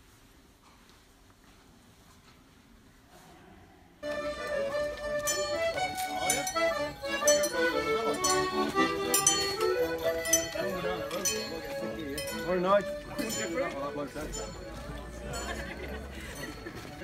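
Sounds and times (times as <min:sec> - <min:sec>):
button accordion folk tune: 0:04.0 - 0:17.0
sharp clinks: 0:05.2 - 0:13.6.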